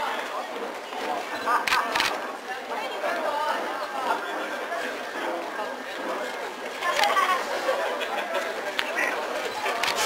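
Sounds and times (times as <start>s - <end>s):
crowd talking: 0.0s - 10.0s.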